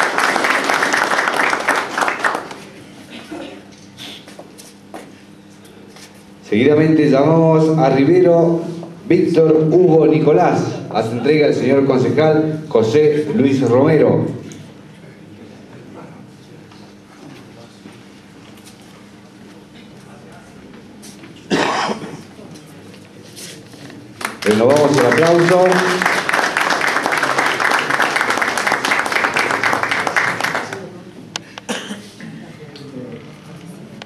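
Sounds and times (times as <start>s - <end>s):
faint hum: 0.0s - 34.0s
loud cough: 3.1s - 3.7s, 21.5s - 22.3s, 31.6s - 32.4s.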